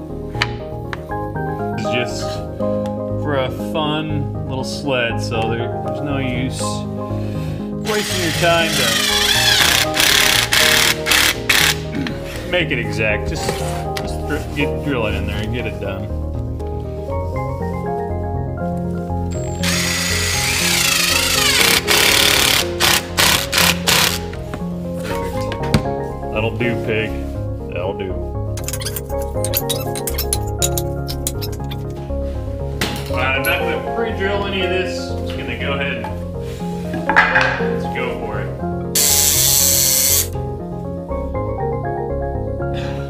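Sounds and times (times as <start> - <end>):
background music: 0.0 - 43.0
cordless drill driving screw: 7.9 - 11.8, 19.6 - 24.2, 39.0 - 40.4
cordless driver motor whine: 19.6 - 22.6.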